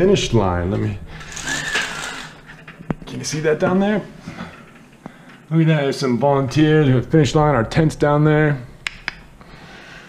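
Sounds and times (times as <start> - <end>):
window blind slats rattling: 1.1 - 5.0
blinds squeak: 1.2 - 3.6.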